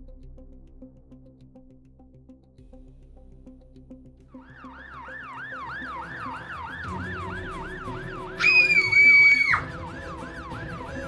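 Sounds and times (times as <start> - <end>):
background music: 0.0 - 11.0
siren yelping: 4.5 - 11.0
loud high tone: 5.6 - 9.9.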